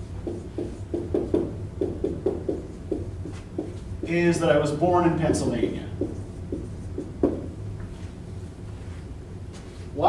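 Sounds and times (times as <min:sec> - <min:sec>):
low room hum: 0:00.0 - 0:10.0
marker writing on whiteboard: 0:00.2 - 0:04.4, 0:05.0 - 0:07.6.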